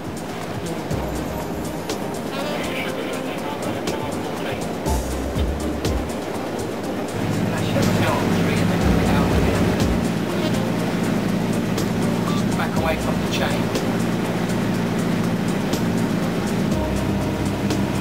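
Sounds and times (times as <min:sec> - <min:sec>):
boat engine droning: 0:00.0 - 0:18.0.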